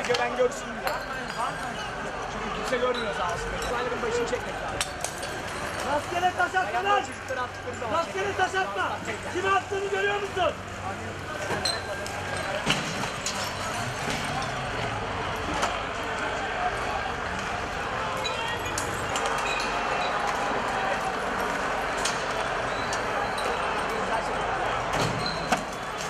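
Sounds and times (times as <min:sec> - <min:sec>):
crowd shouting and yelling: 0:00.0 - 0:26.0.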